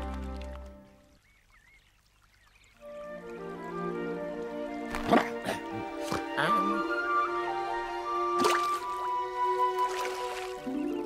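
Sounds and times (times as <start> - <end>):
background music: 0.0 - 1.0, 2.8 - 11.0
faint trickle of running water: 0.0 - 4.8.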